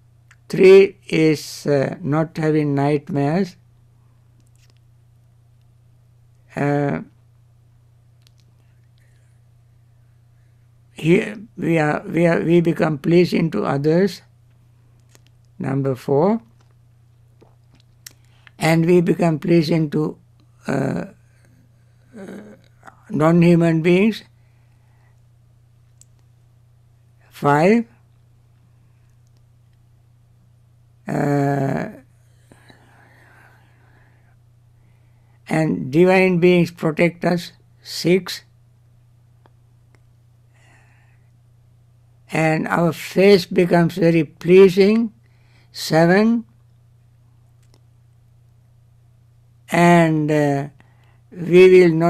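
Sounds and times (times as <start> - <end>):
steady low hum: 0.0 - 52.0
faint clicks: 29.1 - 29.8.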